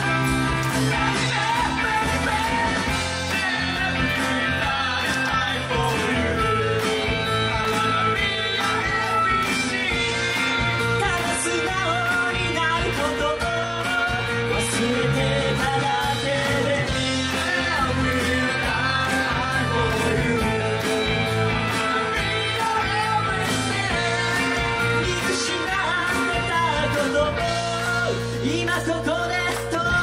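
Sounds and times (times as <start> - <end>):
live rock band playing: 0.0 - 30.0
person singing: 0.0 - 30.0.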